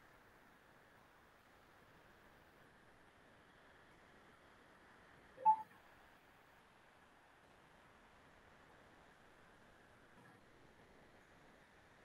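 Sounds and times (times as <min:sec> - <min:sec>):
rising two-note electronic blip: 0:05.4 - 0:05.6.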